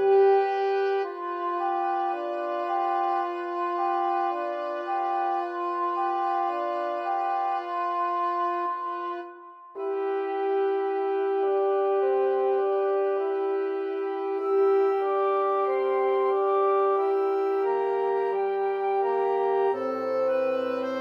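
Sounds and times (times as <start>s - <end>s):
woodwind quintet playing: 0.0s - 21.0s.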